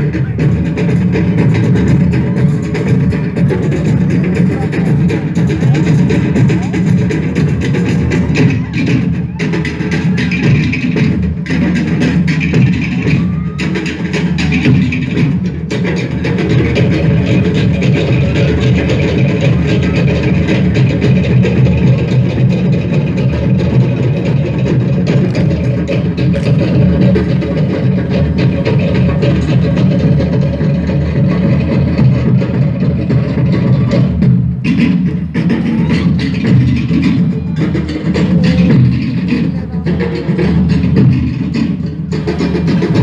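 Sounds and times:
deep drum beats: 0.0 - 43.0.

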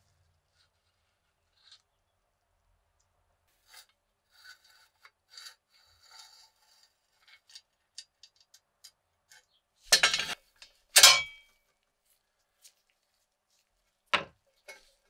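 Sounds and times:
toy truck parts scraping and clicking: 3.5 - 10.9
metal parts clattering: 9.9 - 11.4.

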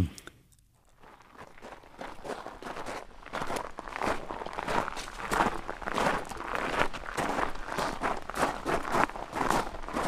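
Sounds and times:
footsteps walking: 0.8 - 10.0.

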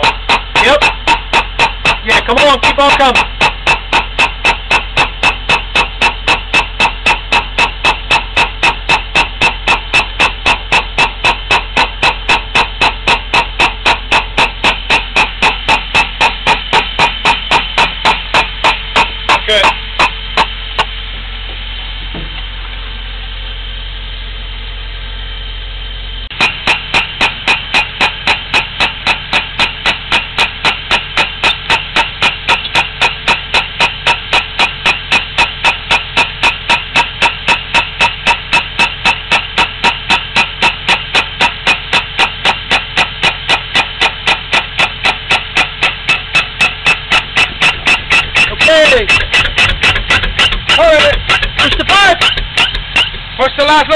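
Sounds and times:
pneumatic tool hammering: 0.0 - 22.7, 26.2 - 53.9
steady hum: 0.0 - 53.9.

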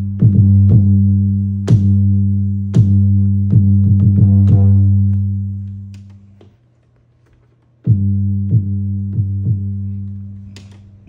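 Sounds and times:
sustained bass note: 0.0 - 6.0, 7.9 - 10.6.

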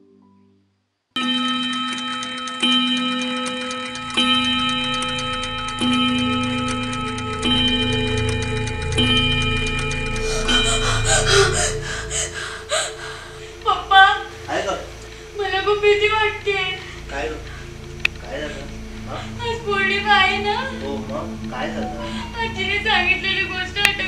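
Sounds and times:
clock ticking: 1.2 - 24.0
pendulum clock chiming: 1.2 - 24.0
woman's voice: 13.6 - 14.4, 15.4 - 17.0, 19.4 - 21.0, 22.0 - 24.0.

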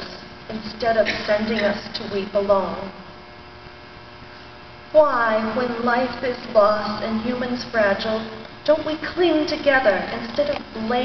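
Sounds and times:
woman's voice: 0.0 - 3.0, 5.0 - 11.0
electrical mains hum: 0.0 - 11.0.

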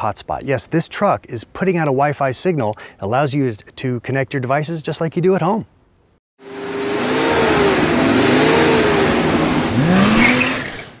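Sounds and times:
car engine revving: 6.4 - 11.0.

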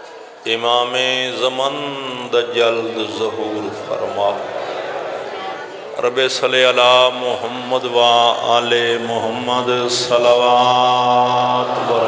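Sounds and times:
man chanting through loudspeaker: 0.3 - 4.9, 6.0 - 12.0.

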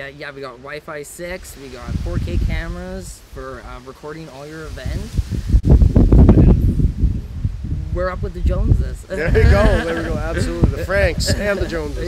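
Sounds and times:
wind buffeting microphone: 1.6 - 3.8, 4.6 - 12.0.

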